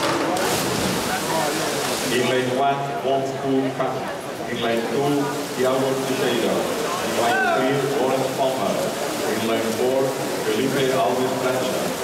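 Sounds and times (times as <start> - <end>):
dive splash into water: 0.0 - 2.2
churning water: 0.0 - 12.0
crowd shouting in pool hall: 6.8 - 8.0.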